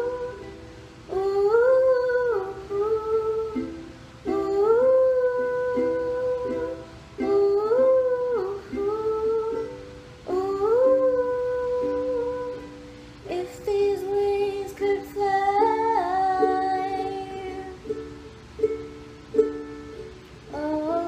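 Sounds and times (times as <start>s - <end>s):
ukulele strumming: 0.0s - 21.0s
woman singing wordlessly: 0.0s - 21.0s.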